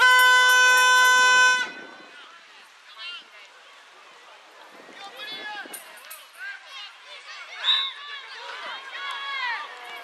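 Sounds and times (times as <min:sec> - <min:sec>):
air horn blast: 0:00.0 - 0:01.8.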